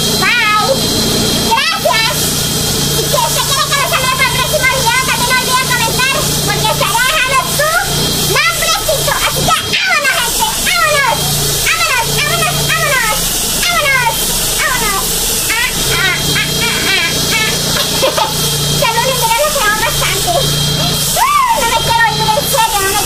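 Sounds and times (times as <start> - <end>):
woman talking animatedly: 1.5 - 2.2, 3.0 - 23.0.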